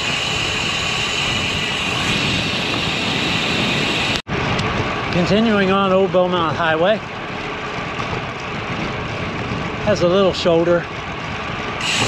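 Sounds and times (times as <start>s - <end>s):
wind rushing: 0.0s - 5.9s
tyres on asphalt: 0.0s - 12.0s.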